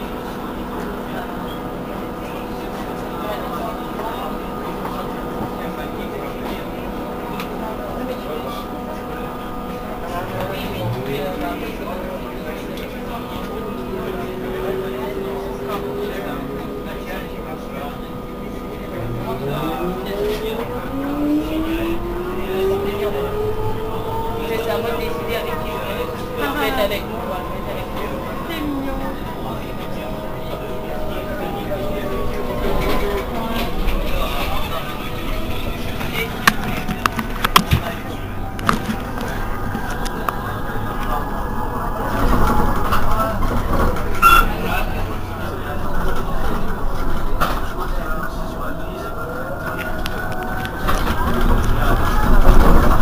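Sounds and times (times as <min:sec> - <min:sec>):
trolleybus electric whine: 0:00.0 - 0:53.0
voices: 0:00.0 - 0:53.0.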